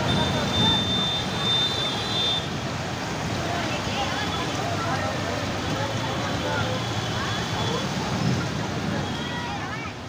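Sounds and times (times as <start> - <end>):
floodwater rushing and splashing: 0.0 - 10.0
traffic driving through water: 0.0 - 10.0.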